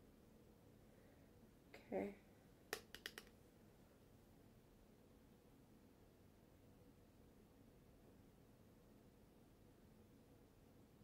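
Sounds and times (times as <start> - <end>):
sharp clicks of makeup tools: 2.7 - 3.4.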